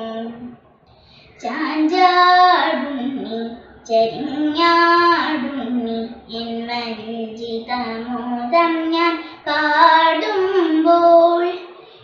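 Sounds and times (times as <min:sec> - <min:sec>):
girl singing unaccompanied: 0:00.0 - 0:00.5, 0:01.2 - 0:11.8.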